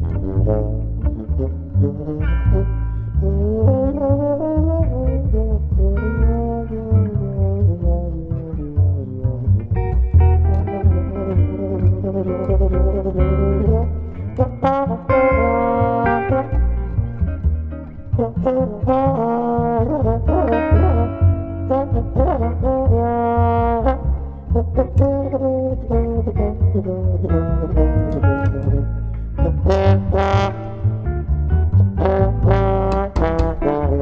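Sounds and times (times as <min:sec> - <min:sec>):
muted trombone melody: 0:00.0 - 0:09.4, 0:10.2 - 0:34.0
double bass notes: 0:00.0 - 0:34.0.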